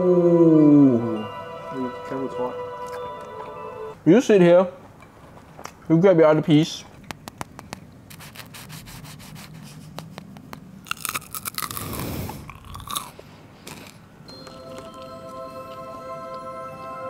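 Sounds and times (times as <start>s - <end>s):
person chewing crunchy food: 7.6s - 15.8s.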